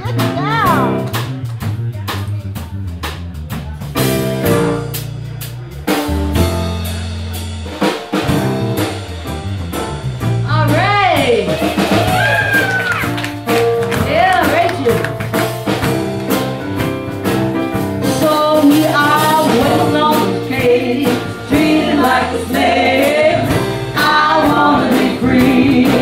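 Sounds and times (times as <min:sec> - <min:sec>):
blues band playing: 0:00.0 - 0:26.0
long low bass notes: 0:00.0 - 0:26.0.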